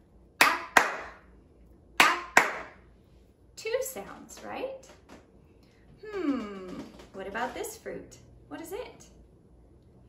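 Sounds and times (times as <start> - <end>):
hand claps: 0.4 - 1.2, 2.0 - 2.8.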